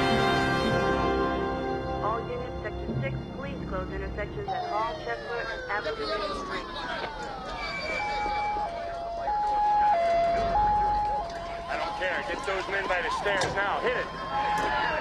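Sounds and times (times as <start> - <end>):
voices calling: 0.1 - 15.0
two-tone siren: 4.2 - 15.0
sirens sliding down in pitch: 4.3 - 15.0.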